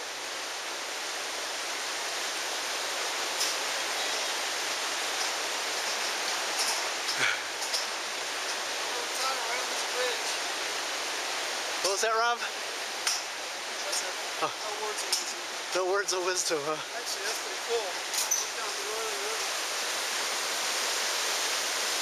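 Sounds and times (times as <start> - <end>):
river water rushing: 0.0 - 22.0.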